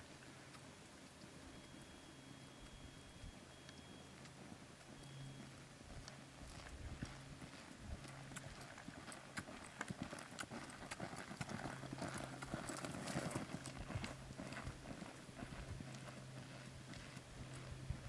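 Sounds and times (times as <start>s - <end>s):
hoofbeats on soft dirt: 0.0s - 18.0s.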